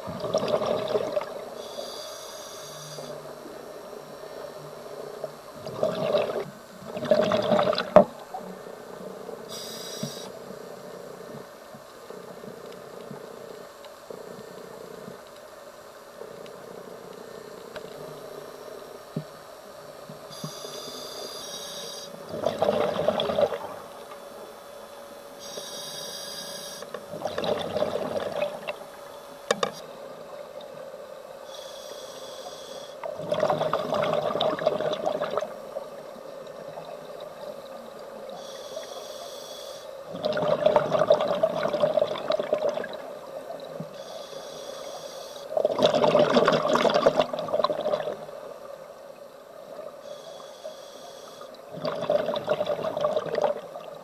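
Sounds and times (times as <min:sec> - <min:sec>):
exhaled bubbles underwater: 0:00.0 - 0:01.6, 0:05.2 - 0:08.6, 0:22.2 - 0:24.0, 0:27.1 - 0:28.9, 0:33.0 - 0:38.9, 0:40.0 - 0:44.0, 0:45.5 - 0:49.9, 0:51.5 - 0:54.0
faint steady hum: 0:00.0 - 0:54.0
hissing regulator inhale: 0:01.6 - 0:06.5, 0:09.4 - 0:11.5, 0:25.4 - 0:26.9, 0:31.4 - 0:33.1, 0:38.3 - 0:40.0, 0:44.0 - 0:45.6, 0:50.0 - 0:51.6.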